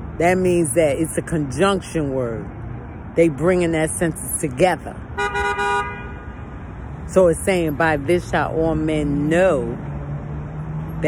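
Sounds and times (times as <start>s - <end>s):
street traffic rumble: 0.0s - 11.0s
vehicle horn toot: 5.2s - 6.4s.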